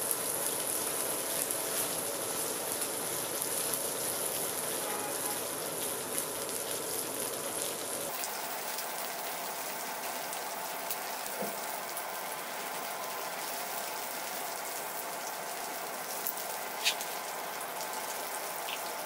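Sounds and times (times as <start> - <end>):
oil sizzling and crackling: 0.0 - 19.0.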